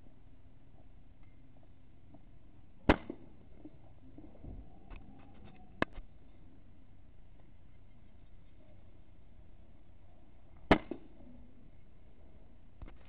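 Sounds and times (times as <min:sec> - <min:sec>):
air rifle firing crack: 0:02.8 - 0:03.2, 0:10.7 - 0:11.1.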